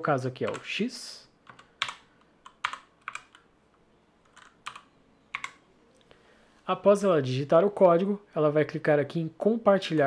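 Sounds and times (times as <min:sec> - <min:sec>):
computer keyboard keystrokes: 0:01.4 - 0:03.4, 0:04.3 - 0:05.6.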